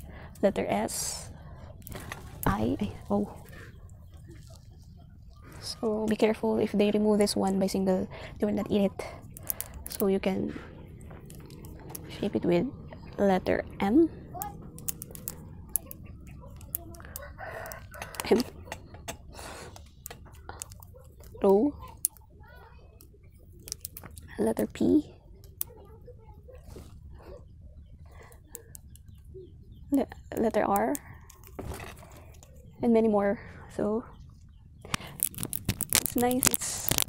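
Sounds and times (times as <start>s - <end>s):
person speaking: 2.4s - 3.6s, 5.4s - 18.7s, 35.0s - 37.0s
plastic fidget toy clicking: 8.7s - 10.2s, 14.4s - 19.2s, 19.8s - 22.3s, 23.0s - 24.7s, 34.9s - 37.0s.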